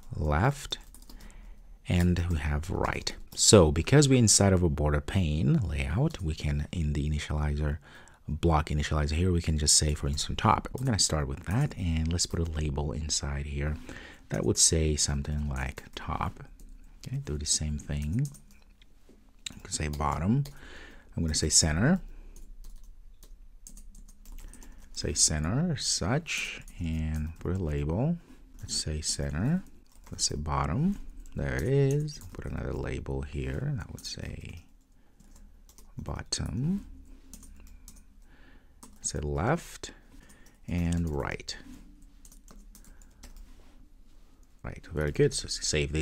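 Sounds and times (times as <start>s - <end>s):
computer keyboard typing: 0.0s - 3.5s, 17.7s - 18.7s, 22.3s - 25.2s, 26.4s - 27.8s, 28.6s - 32.8s, 33.8s - 38.2s, 38.8s - 39.2s, 40.2s - 43.6s.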